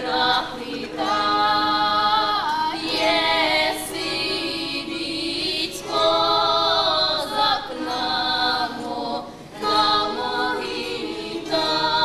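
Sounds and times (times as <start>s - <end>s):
girls singing in chorus: 0.0s - 12.0s.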